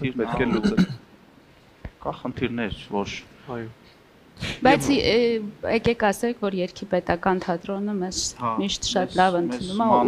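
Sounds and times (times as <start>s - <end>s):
person talking: 0.1s - 1.0s, 4.6s - 5.2s, 8.1s - 10.0s.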